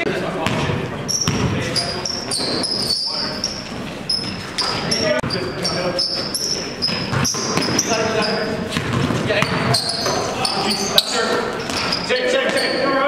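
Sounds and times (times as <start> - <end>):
players calling out: 0.0 - 13.0
basketball bouncing: 0.4 - 12.8
sneakers squeaking on court floor: 0.4 - 13.0.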